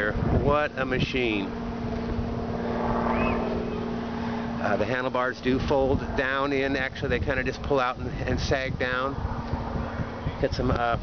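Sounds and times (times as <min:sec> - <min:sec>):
motor humming: 0:01.2 - 0:06.4.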